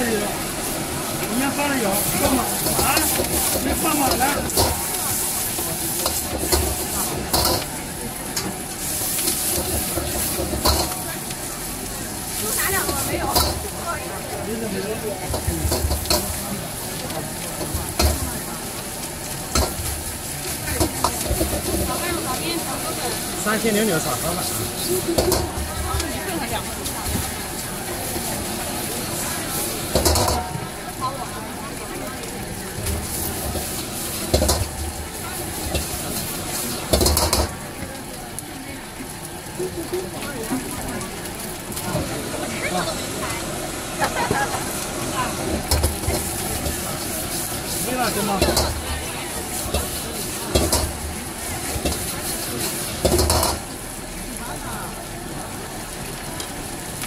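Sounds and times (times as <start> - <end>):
food sizzling in a wok: 0.0 - 57.0
metal ladle scraping a wok: 2.0 - 7.7, 8.4 - 11.0.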